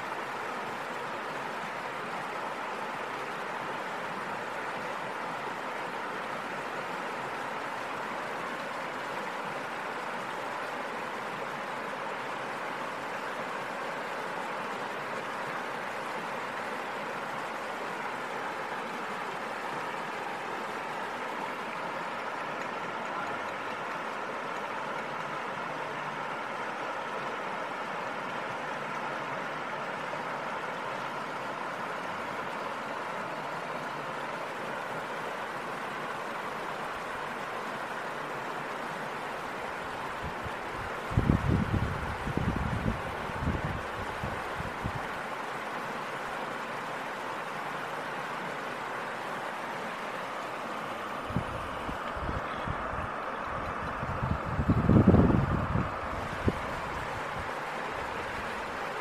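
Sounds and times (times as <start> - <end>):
river water over weir: 0.0 - 59.0.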